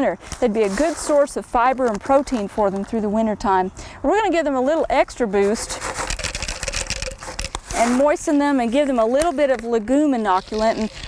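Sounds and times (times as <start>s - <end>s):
beans pouring into plastic cup: 5.6s - 8.0s, 10.3s - 11.0s.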